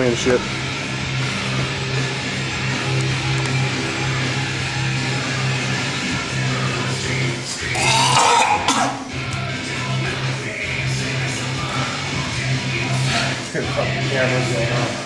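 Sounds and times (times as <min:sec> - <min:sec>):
person retching: 0:07.7 - 0:09.1.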